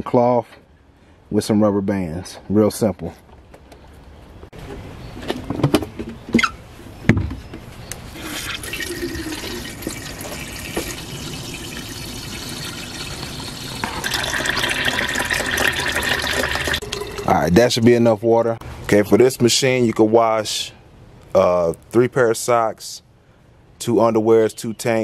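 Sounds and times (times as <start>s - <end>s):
water pouring into plastic tub: 8.3s - 17.4s.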